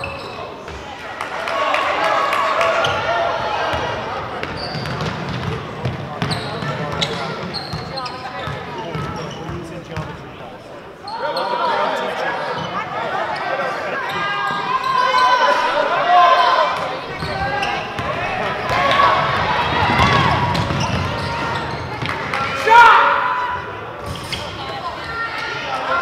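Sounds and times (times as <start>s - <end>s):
loud shout: 1.0s - 4.0s, 13.0s - 21.7s, 22.3s - 23.8s.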